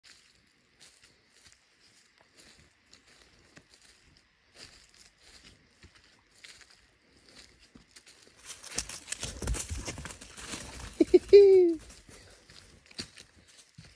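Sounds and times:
footsteps in dry leaves: 0.0s - 13.9s
dog running through leaves: 8.4s - 12.1s.

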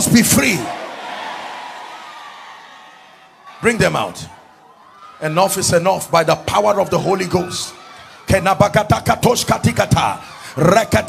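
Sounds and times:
congregation noise in a large hall: 0.0s - 11.0s.

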